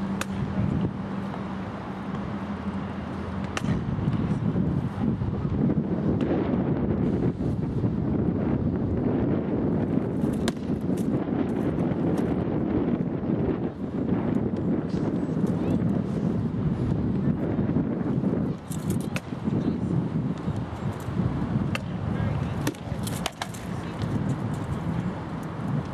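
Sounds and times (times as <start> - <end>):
wind rumble on microphone: 0.0 - 25.9.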